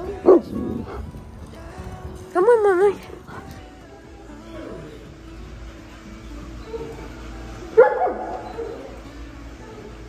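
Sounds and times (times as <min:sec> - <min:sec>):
dog barking: 0:07.8 - 0:08.9.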